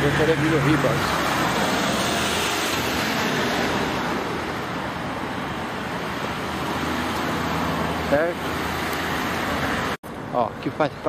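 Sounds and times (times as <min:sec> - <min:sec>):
vehicle approaching: 0:00.0 - 0:10.5
road traffic passing cars: 0:00.0 - 0:11.0.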